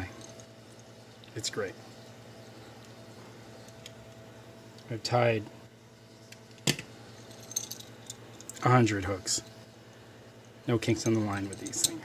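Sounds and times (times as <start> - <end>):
metal hooks clinking: 6.7 - 8.7, 10.9 - 12.0.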